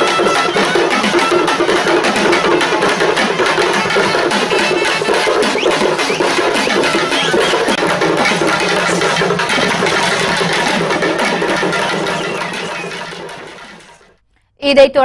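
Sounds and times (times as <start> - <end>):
drum ensemble fast rhythm: 0.0 - 14.2.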